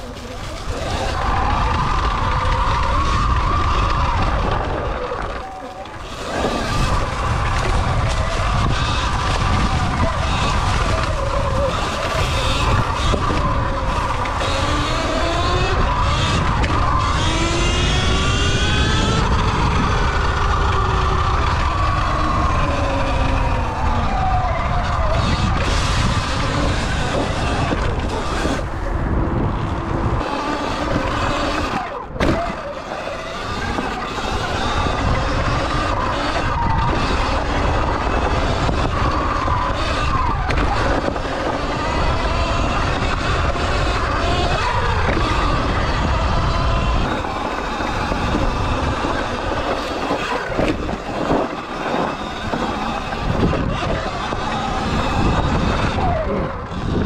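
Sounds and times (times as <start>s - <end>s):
electric motor whining: 0.0s - 57.0s
wind rumble on microphone: 0.0s - 57.0s.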